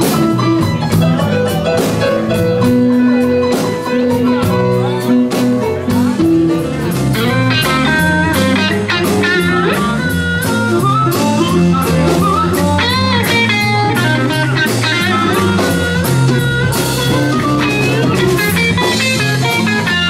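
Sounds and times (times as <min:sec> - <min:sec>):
electric blues band playing: 0:00.0 - 0:20.0
lead electric guitar: 0:00.0 - 0:20.0.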